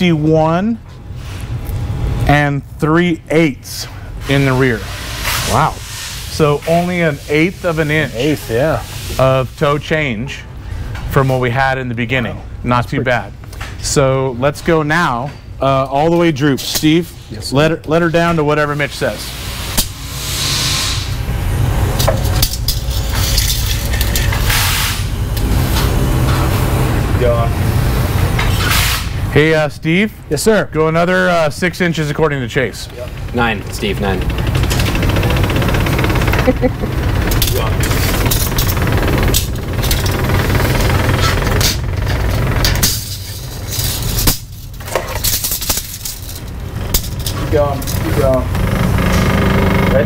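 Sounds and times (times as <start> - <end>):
lift motor humming and rattling: 18.9 - 29.4, 31.1 - 50.0
forklift engine running: 21.0 - 29.3, 31.9 - 44.3, 46.2 - 50.0.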